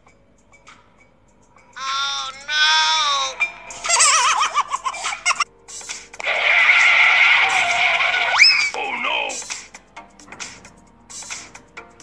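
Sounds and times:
high-pitched comic cries: 1.8 - 5.4, 6.3 - 8.9
warbling giggle-like sound: 3.8 - 5.4.

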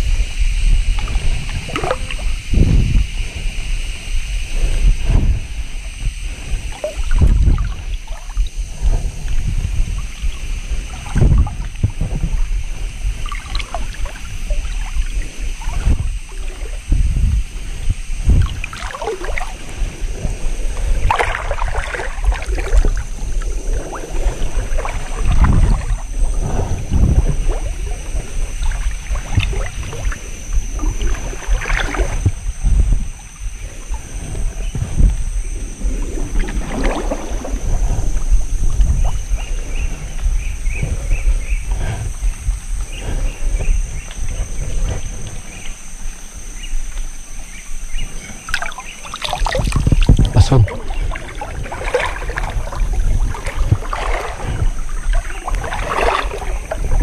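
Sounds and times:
river water sloshing and splashing: 1.0 - 3.7, 6.5 - 40.8, 48.4 - 57.0.

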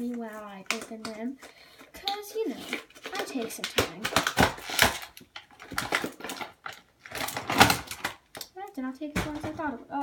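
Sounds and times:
packaging rustling and crinkling: 0.0 - 8.5.

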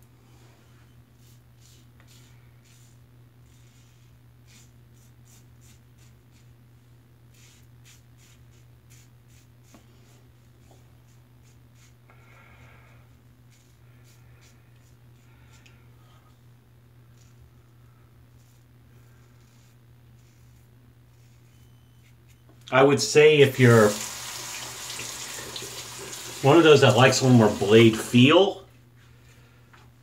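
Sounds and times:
steady low hum: 0.0 - 23.9.

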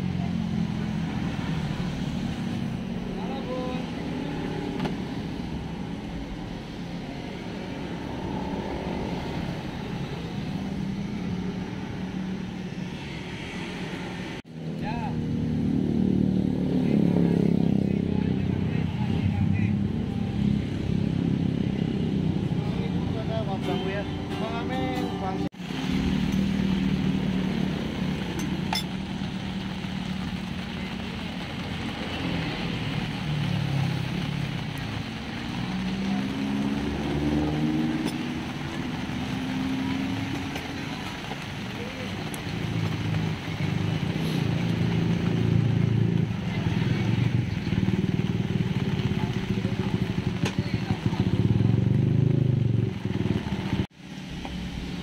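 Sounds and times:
motor traffic: 0.0 - 55.0
motorcycles running: 0.0 - 55.0.

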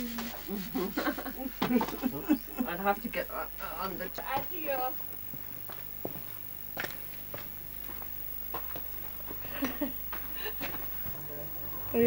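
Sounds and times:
people talking: 0.0 - 5.0, 11.0 - 12.0
people laughing: 0.6 - 2.9, 9.4 - 10.8.

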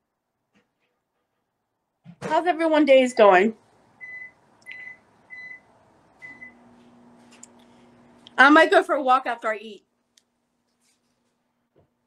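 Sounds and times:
microwave oven beeping: 4.0 - 8.0.

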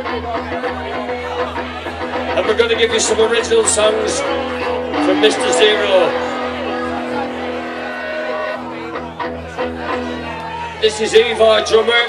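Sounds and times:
amplified held tones: 4.3 - 9.0.

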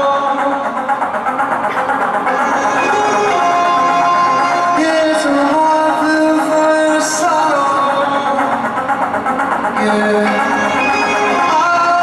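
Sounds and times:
live pop band music: 0.0 - 12.0.

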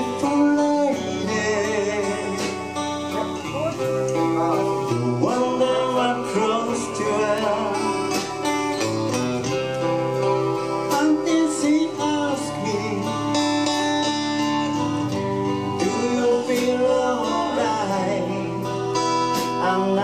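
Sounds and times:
man singing: 0.0 - 8.5, 10.8 - 20.0
acoustic guitars strummed: 0.0 - 20.0.

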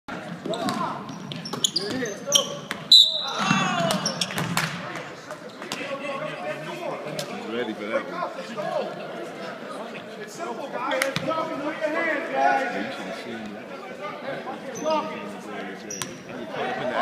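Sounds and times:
sneakers squeaking: 0.2 - 4.7, 15.9 - 16.3
voices shouting: 2.9 - 4.2.

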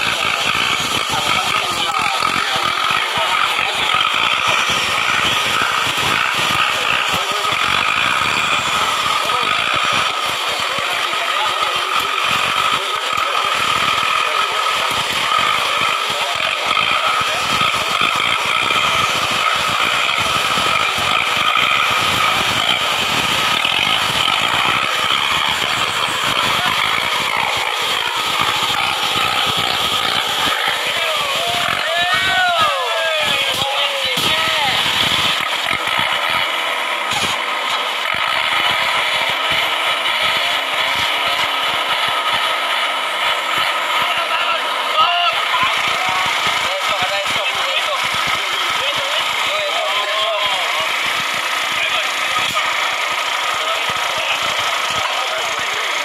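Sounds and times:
engine drone with whine: 0.0 - 56.0.

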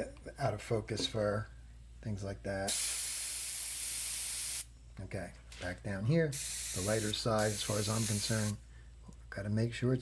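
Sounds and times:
airbrush spraying hiss: 2.7 - 4.7, 6.3 - 8.6.

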